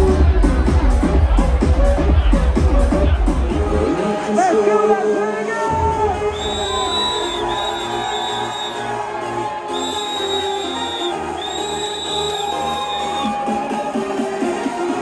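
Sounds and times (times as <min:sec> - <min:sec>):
pulsing bass: 0:00.0 - 0:04.0
electronic dance music: 0:00.0 - 0:15.0.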